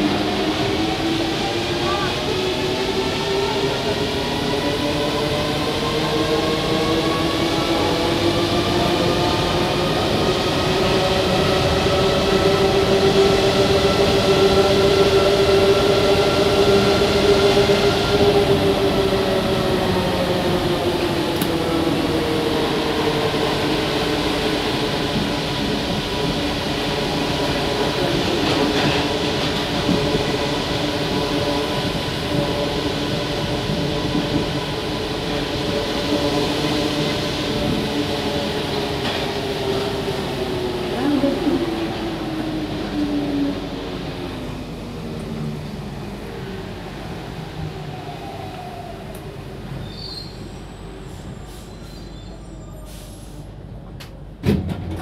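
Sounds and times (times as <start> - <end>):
train rolling rumble: 0.0 - 55.0.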